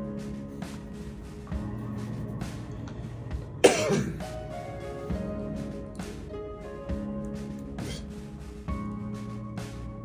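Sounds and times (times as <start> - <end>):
background music with held tones: 0.0 - 10.0
man coughing: 3.6 - 4.2, 7.8 - 8.1.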